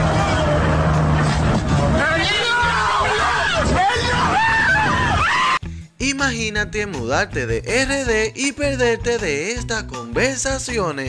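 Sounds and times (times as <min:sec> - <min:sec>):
people screaming: 0:00.0 - 0:05.6.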